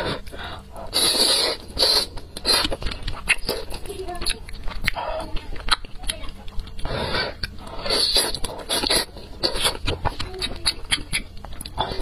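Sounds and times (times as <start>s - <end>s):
close chewing with wet mouth clicks: 0.2s - 12.0s
noodles slurped: 0.8s - 5.9s, 6.8s - 12.0s.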